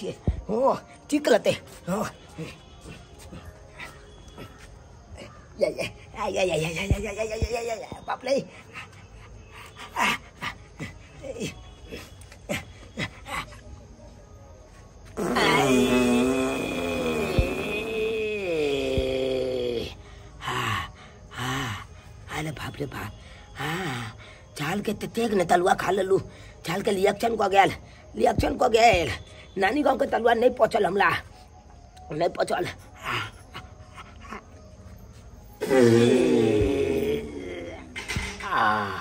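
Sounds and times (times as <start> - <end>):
quiet background music: 0.0 - 39.0.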